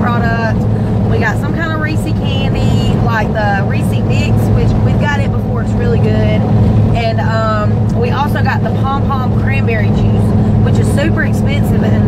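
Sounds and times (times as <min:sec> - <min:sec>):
car cabin road rumble: 0:00.0 - 0:12.0
woman talking: 0:00.0 - 0:12.0.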